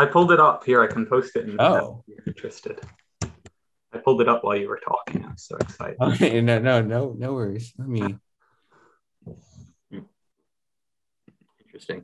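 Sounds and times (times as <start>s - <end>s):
person breathing: 8.4s - 9.1s.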